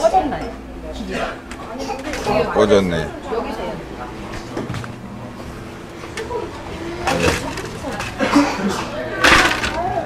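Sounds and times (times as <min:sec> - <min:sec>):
voices murmuring: 0:00.0 - 0:10.0.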